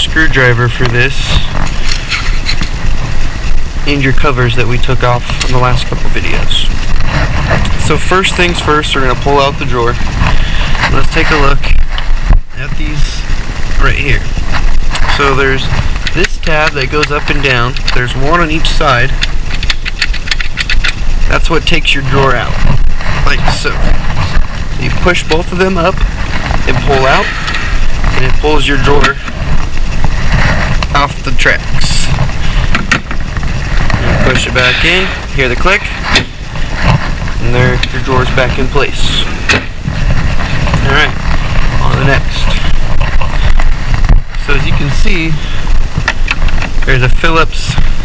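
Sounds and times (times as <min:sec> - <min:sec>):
steady low hum: 0:00.0 - 0:48.0
steady low rumble: 0:00.0 - 0:48.0.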